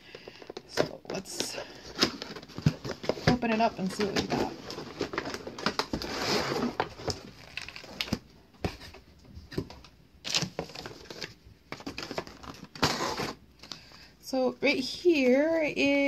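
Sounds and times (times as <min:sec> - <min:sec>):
packaging rustling and clicking: 0:00.1 - 0:13.9.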